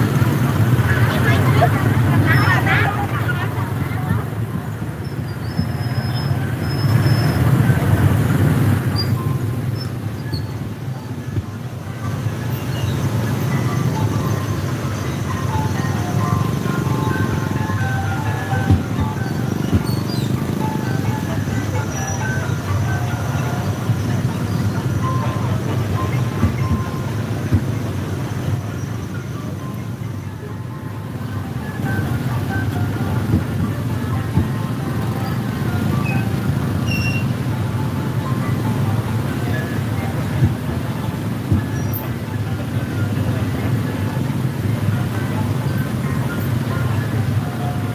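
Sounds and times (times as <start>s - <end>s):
motorbike engines rumbling: 0.0s - 47.9s
scattered voices: 0.1s - 5.2s, 11.1s - 36.8s
music: 11.0s - 47.9s.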